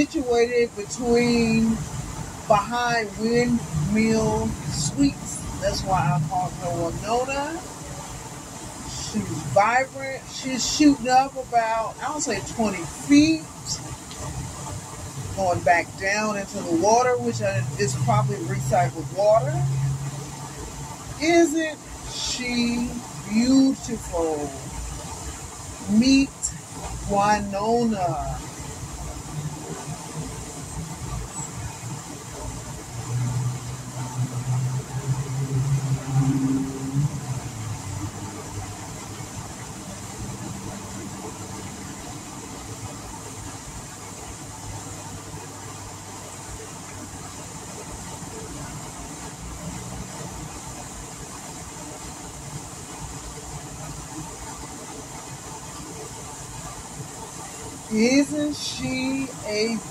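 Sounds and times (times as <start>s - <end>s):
fountain spraying water: 0.0s - 59.9s
vehicle engine humming: 0.0s - 59.9s.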